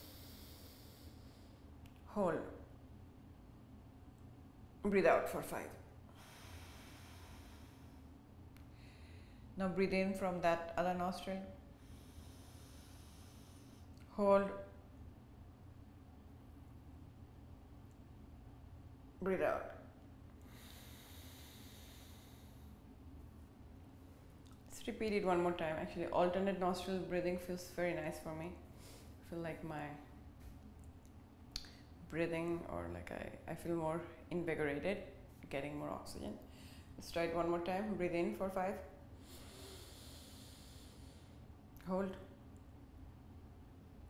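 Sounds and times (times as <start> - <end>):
slow nasal inhale: 0.0 - 1.6, 6.1 - 9.5, 11.7 - 14.0, 20.4 - 22.8, 39.2 - 41.5.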